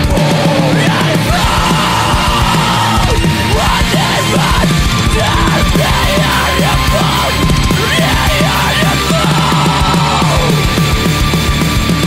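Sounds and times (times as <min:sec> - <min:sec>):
heavy rock band playing: 0:00.0 - 0:12.0
yelled vocals: 0:00.0 - 0:12.0.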